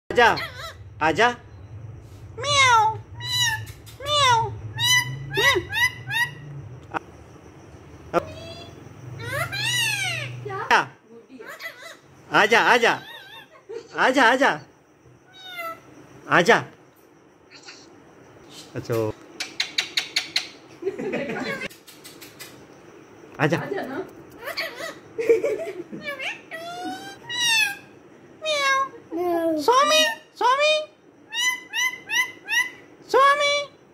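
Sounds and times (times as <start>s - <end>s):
parakeet mimicking cat meow: 2.4s - 6.4s, 8.3s - 10.5s, 15.2s - 15.9s, 26.0s - 30.2s
parakeet meow-like calls: 9.2s - 10.4s, 15.2s - 15.9s, 26.0s - 28.9s
parakeet click: 21.7s - 22.6s.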